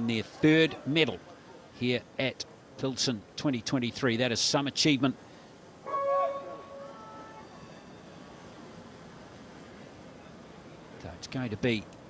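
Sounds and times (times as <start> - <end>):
low background noise: 0.0 - 12.0
pitched tones: 5.9 - 8.3.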